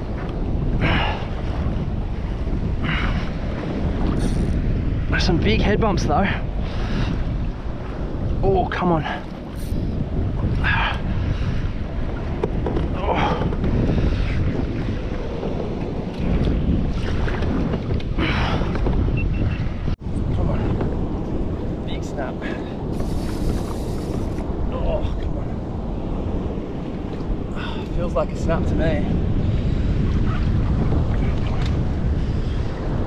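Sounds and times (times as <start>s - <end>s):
choppy sea washing around kayak: 0.0s - 33.0s
wind buffeting microphone: 0.0s - 33.0s.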